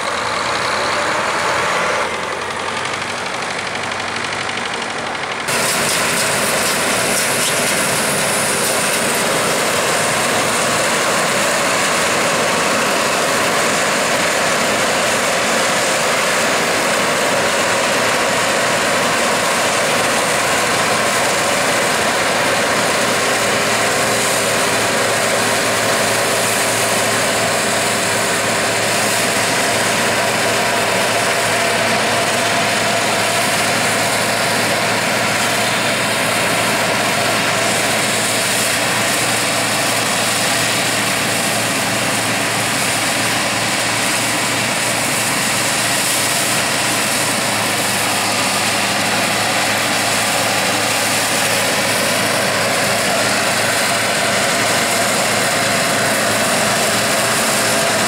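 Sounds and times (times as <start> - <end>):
combine harvester running: 0.0 - 58.0.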